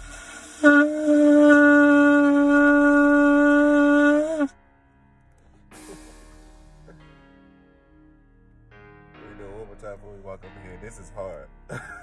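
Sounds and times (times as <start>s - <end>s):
breath hissing through horn: 0.0s - 4.5s, 5.4s - 7.1s
shofar held note: 0.0s - 4.6s.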